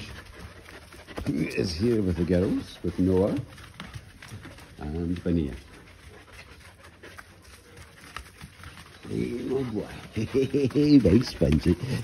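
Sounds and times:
dogs panting: 0.0 - 12.0.

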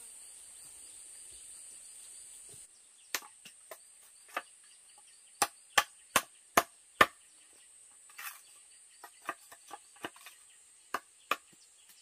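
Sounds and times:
high insect drone: 0.0 - 5.3
knife chopping bamboo: 3.1 - 4.5, 5.4 - 7.2, 9.0 - 12.0.

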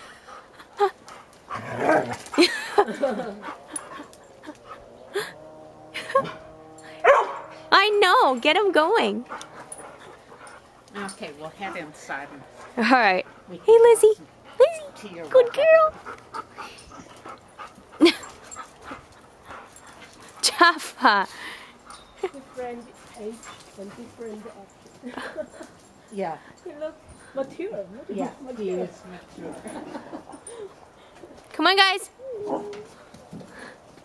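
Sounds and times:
dogs panting and scuffling: 0.0 - 34.0
dogs growling while play-fighting: 1.0 - 7.7, 9.2 - 13.5.

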